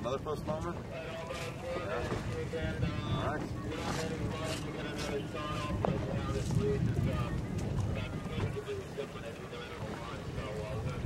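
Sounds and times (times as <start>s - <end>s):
boat moving through choppy water: 0.0s - 11.0s
wind buffeting microphone: 0.0s - 11.0s.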